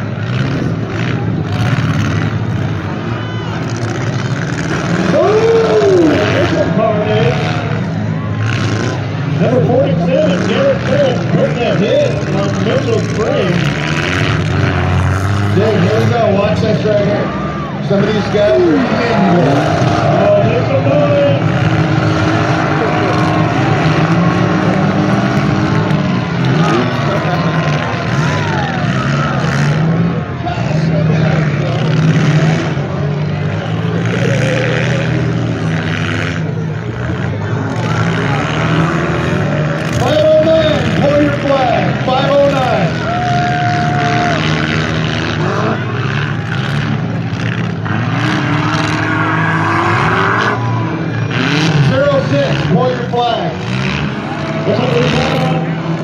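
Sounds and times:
car engines revving: 0.0 - 56.0
spectators' voices: 0.0 - 56.0.

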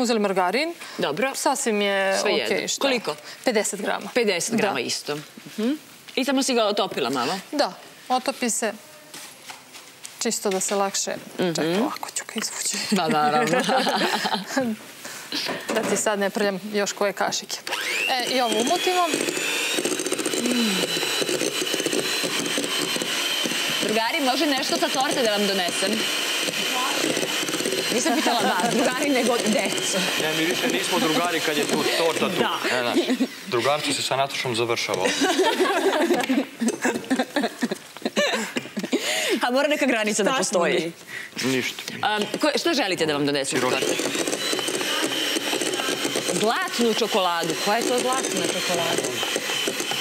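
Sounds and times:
electric hand mixer whirring: 13.1 - 14.6, 17.5 - 34.2, 34.8 - 37.5, 41.4 - 50.0.

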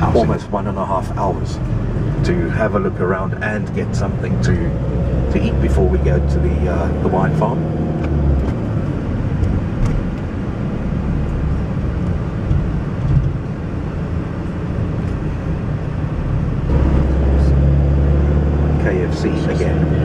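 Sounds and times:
car engine rumble: 0.0 - 20.0
road noise: 0.0 - 20.0.

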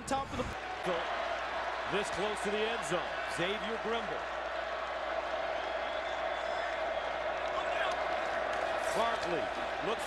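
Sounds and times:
stadium crowd roar: 0.4 - 10.0.

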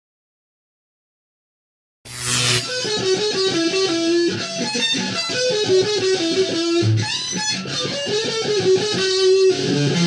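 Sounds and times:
electric guitar lead notes: 2.1 - 10.0.

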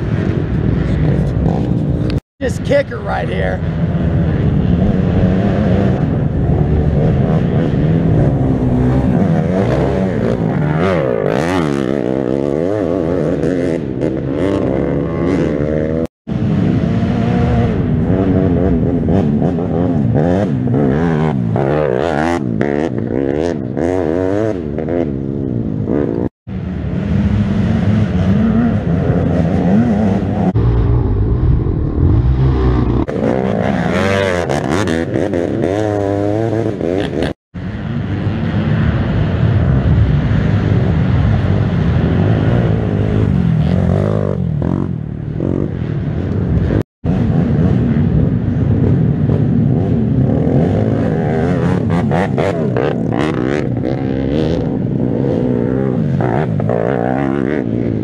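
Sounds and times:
atv engines revving: 0.0 - 58.0.

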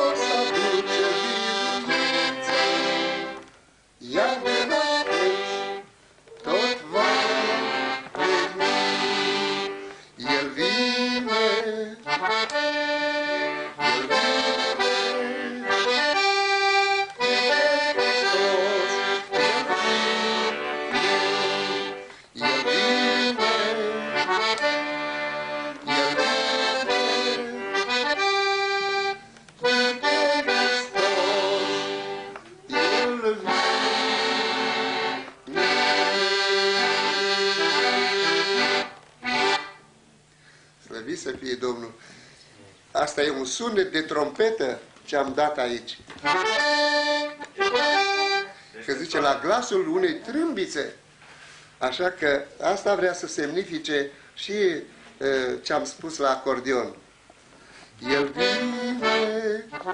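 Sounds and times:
piano accordion playing hymn-like tune: 0.0 - 39.9, 46.2 - 50.0, 57.8 - 59.9.

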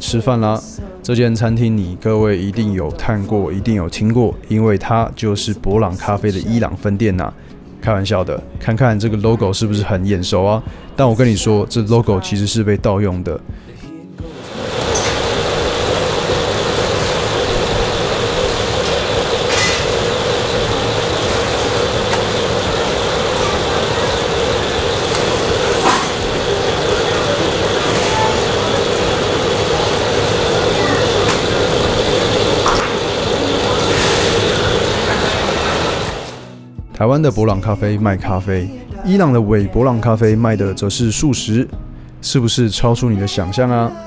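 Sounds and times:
bakery machine hum: 14.2 - 36.5.

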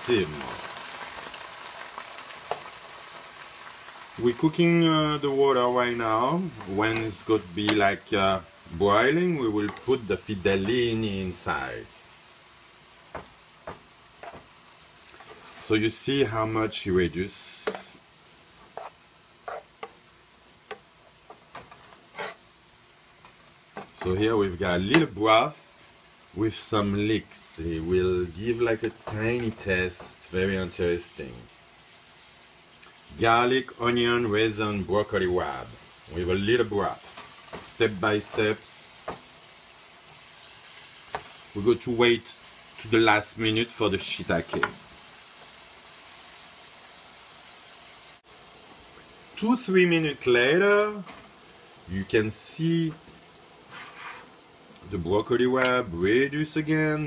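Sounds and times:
greens sizzling in a pan: 0.0 - 57.0.

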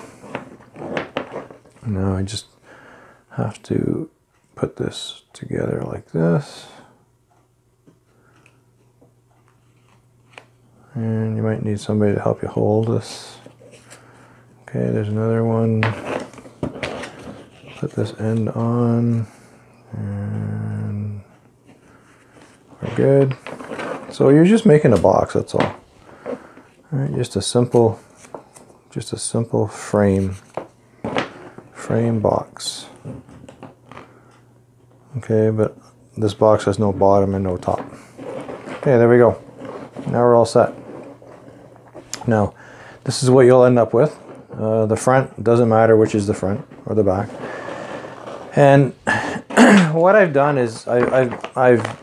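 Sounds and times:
low steady hum: 0.0 - 52.0
cardboard and tape crinkling: 44.0 - 52.0.

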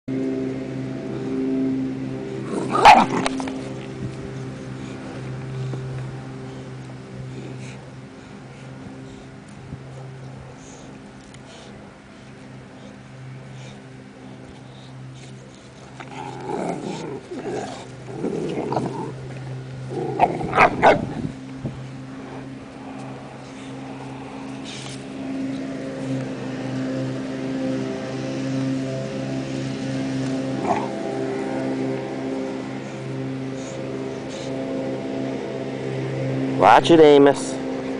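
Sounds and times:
steady low hum: 0.1 - 37.9
dogs growling: 2.3 - 9.1, 12.3 - 27.8, 29.4 - 36.0.

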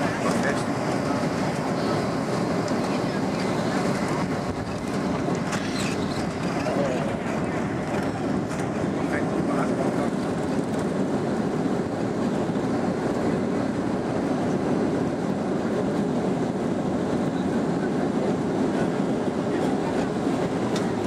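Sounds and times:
jet cabin roar and rumble: 0.0 - 21.0.

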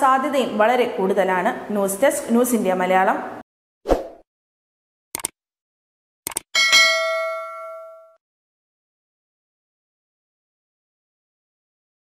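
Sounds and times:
notification bell ding: 6.6 - 8.2.

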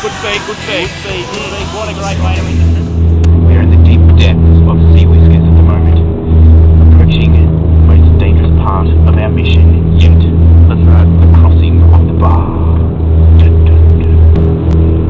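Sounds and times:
boat engine droning: 0.0 - 15.0.

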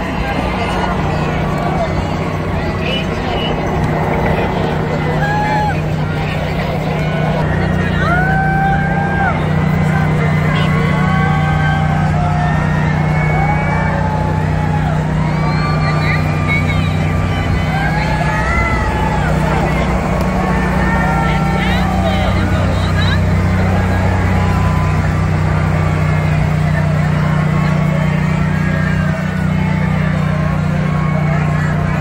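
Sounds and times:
crowd calling out and chattering: 0.0 - 32.0
truck engine hum: 0.0 - 32.0.

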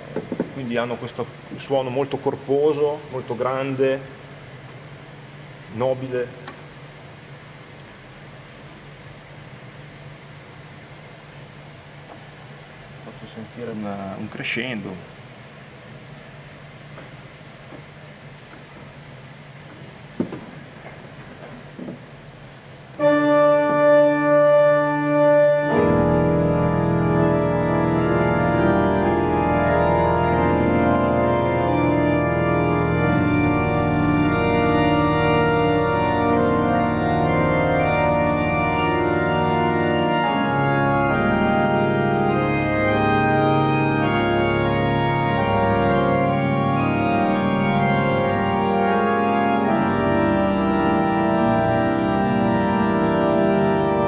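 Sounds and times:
pipe organ chords: 0.0 - 4.5, 22.9 - 54.0.

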